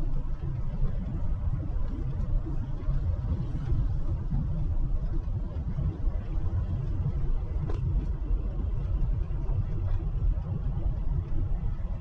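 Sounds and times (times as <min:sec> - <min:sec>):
truck engine and tyre rumble: 0:00.0 - 0:12.0.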